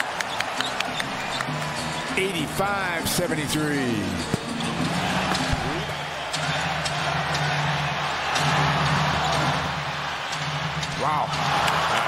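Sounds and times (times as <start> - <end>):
crowd noise: 0.0 - 12.0
low hum of arena music: 0.0 - 12.0.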